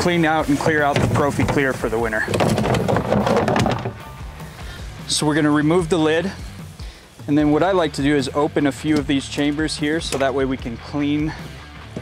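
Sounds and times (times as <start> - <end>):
quiet background music: 0.0 - 12.0
plastic lid clattering: 0.9 - 4.0.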